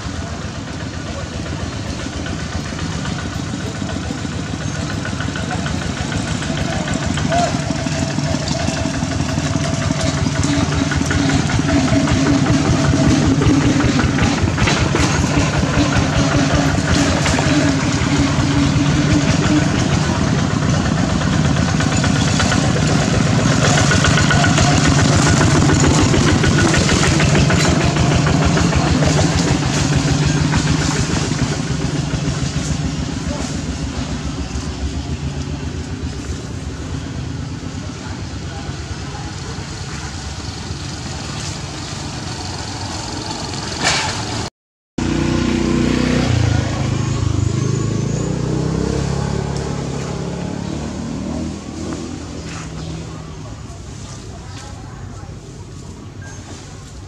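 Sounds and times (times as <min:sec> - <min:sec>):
voices: 0:00.0 - 0:44.4, 0:45.8 - 0:57.0
engine running steadily: 0:00.0 - 0:57.0.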